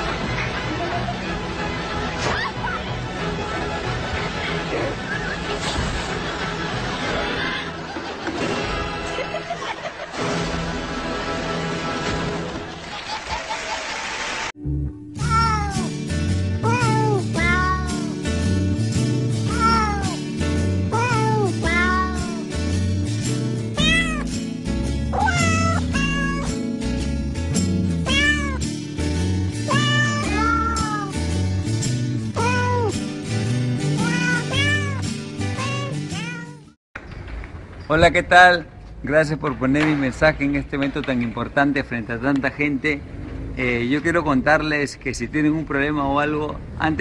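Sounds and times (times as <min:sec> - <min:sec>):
cat meows sung to a tune: 0:15.2 - 0:16.0, 0:16.6 - 0:18.2, 0:19.5 - 0:20.3, 0:20.9 - 0:22.5, 0:23.8 - 0:24.3, 0:25.2 - 0:26.6, 0:28.0 - 0:28.6, 0:29.7 - 0:31.2, 0:32.4 - 0:33.0, 0:34.0 - 0:36.7.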